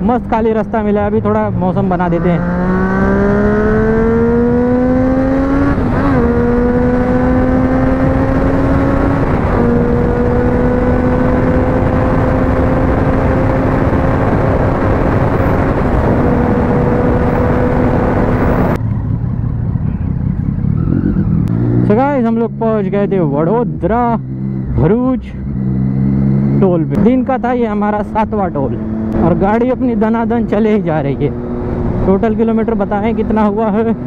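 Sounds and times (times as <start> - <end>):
motorcycle engine revving: 0.0 - 34.0
wind rushing: 2.4 - 18.8.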